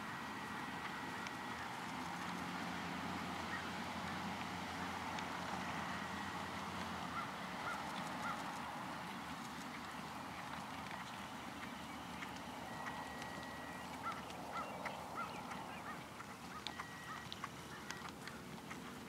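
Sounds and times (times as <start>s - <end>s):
short bird calls: 7.1s - 8.6s, 11.0s - 18.1s
faint clicks: 9.4s - 19.0s.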